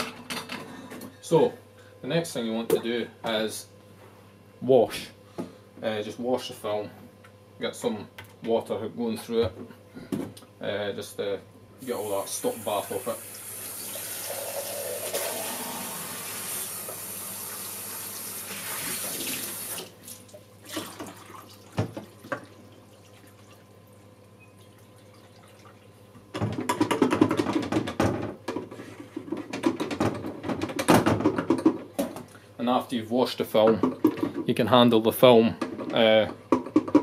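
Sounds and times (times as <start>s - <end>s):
rinse water splashing in tank: 12.6s - 24.0s, 24.6s - 25.9s.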